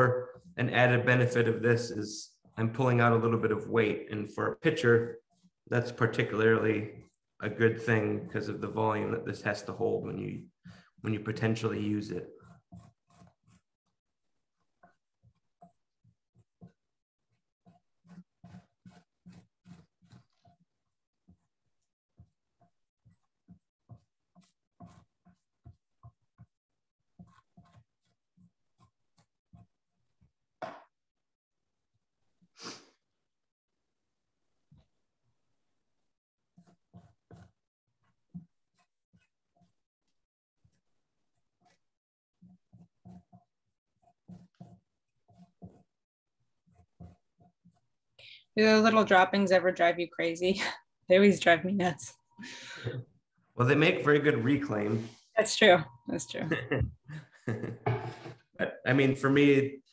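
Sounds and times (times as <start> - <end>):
rasp scraping clay: 5.2 - 31.0, 35.8 - 48.0.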